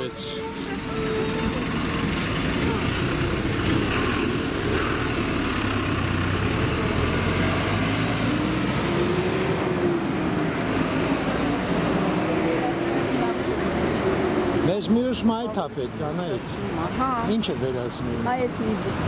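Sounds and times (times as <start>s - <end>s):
cars and bus passing: 0.0s - 19.0s.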